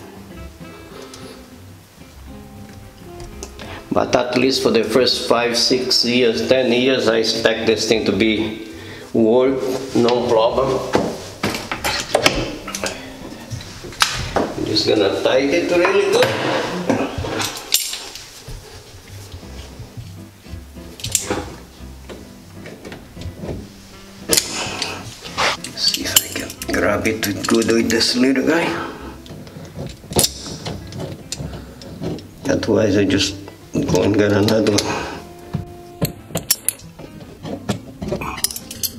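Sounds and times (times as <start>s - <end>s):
metal tools clicking on stone counter: 17.4s - 18.2s, 25.6s - 28.0s, 38.3s - 38.9s
pliers clicking on metal nut: 21.0s - 21.4s, 29.2s - 32.3s, 36.0s - 36.9s, 38.1s - 38.9s.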